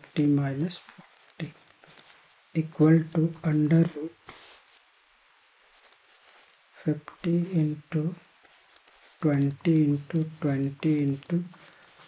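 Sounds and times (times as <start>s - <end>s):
person speaking: 0.0s - 4.6s, 5.8s - 12.0s
stylus scratching on tablet: 0.1s - 4.8s, 5.7s - 12.0s.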